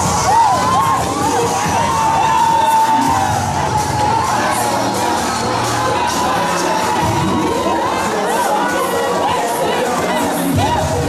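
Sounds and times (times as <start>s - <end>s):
audience cheering and shouting: 0.0s - 11.0s
music: 0.0s - 11.0s.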